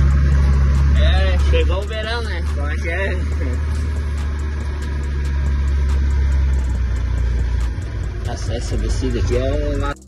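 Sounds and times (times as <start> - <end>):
truck engine drone: 0.0 - 10.0.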